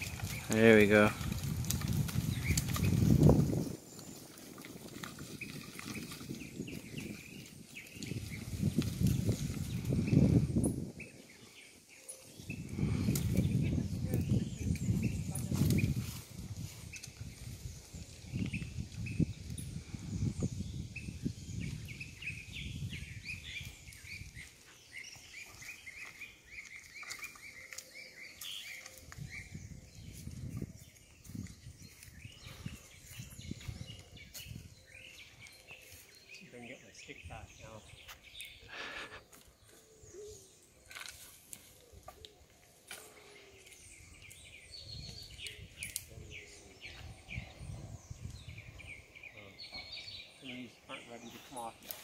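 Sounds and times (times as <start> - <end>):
bird chirping: 0.0 - 16.0, 16.7 - 52.0
wind rustling branches: 0.0 - 52.0.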